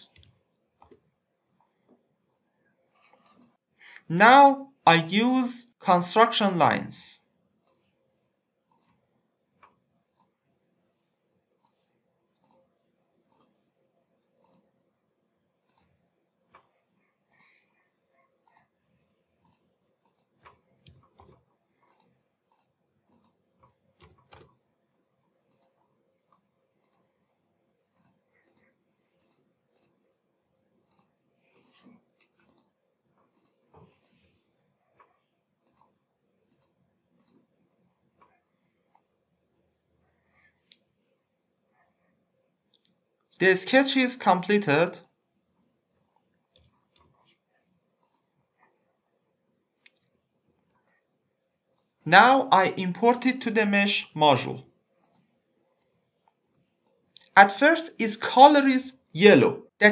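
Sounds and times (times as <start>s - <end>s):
faint computer mouse clicks: 3.0s - 3.6s, 7.6s - 7.9s, 8.7s - 9.0s, 9.6s - 10.4s, 11.6s - 12.7s, 13.3s - 13.6s, 14.4s - 14.7s, 15.7s - 16.7s, 17.3s - 17.7s, 18.4s - 18.8s, 19.4s - 24.6s, 25.5s - 27.1s, 27.9s - 30.0s, 30.9s - 34.4s, 35.0s - 37.5s, 46.5s - 47.4s, 48.0s - 48.3s, 49.8s - 51.1s, 55.0s - 55.3s.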